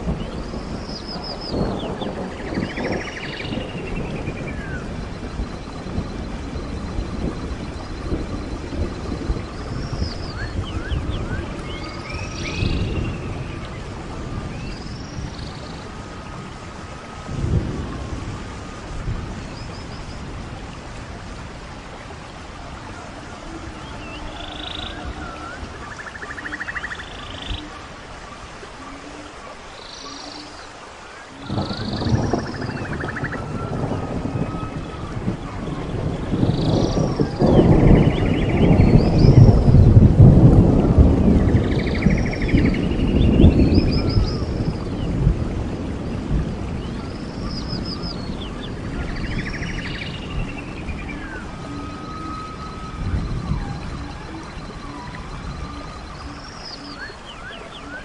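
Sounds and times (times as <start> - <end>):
birds chirping: 0.0 - 40.0, 40.6 - 58.0
thunder rumbling: 0.0 - 58.0.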